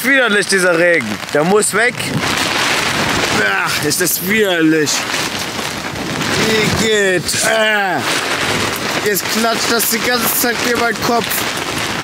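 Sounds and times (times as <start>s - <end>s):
heavy rain pouring: 0.0s - 12.0s.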